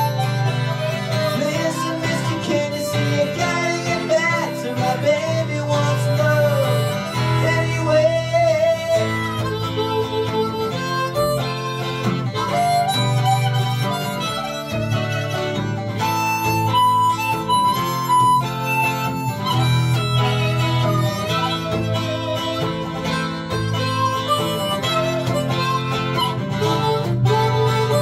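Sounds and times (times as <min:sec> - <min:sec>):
harmonica melody: 0:00.0 - 0:28.0
strummed acoustic guitar: 0:00.0 - 0:28.0.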